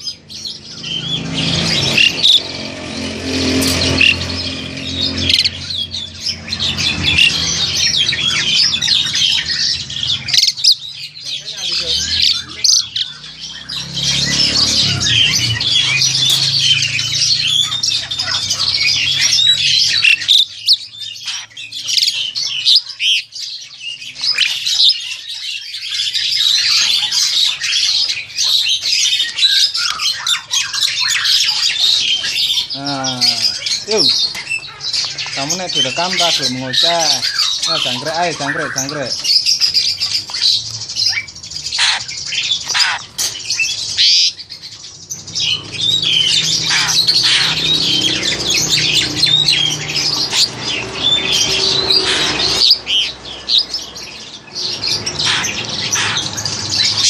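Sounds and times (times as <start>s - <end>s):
starlings chirping and squawking: 0.0s - 57.0s.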